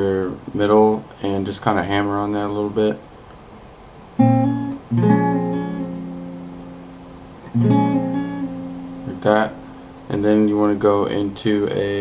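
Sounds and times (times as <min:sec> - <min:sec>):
acoustic guitar chord: 0:04.2 - 0:10.3.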